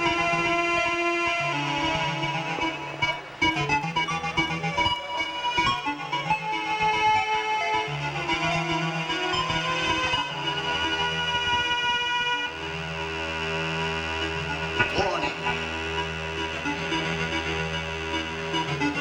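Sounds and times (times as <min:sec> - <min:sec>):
held synthesizer chords: 0:09.0 - 0:19.0
sustained bass line: 0:14.5 - 0:16.8.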